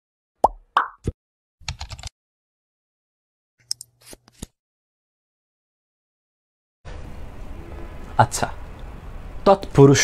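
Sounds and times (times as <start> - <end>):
quick pops dropping in pitch: 0.4 - 1.2
rapid typing clicks: 1.6 - 2.1.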